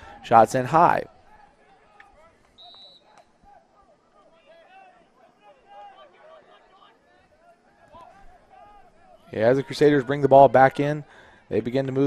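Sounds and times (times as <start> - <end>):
distant players shouting: 0.0 - 12.0.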